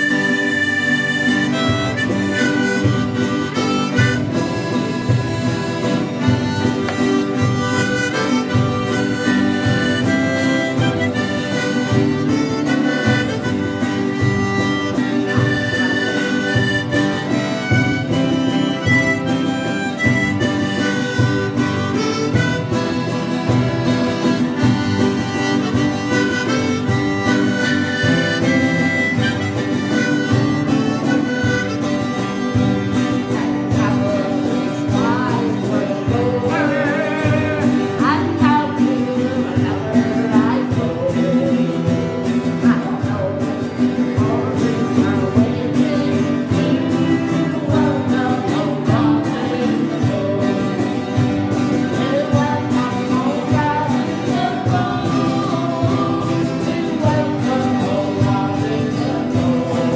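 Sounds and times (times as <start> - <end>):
acoustic guitars strumming: 0.0 - 59.9
reedy harmonica-like melody: 0.0 - 59.9.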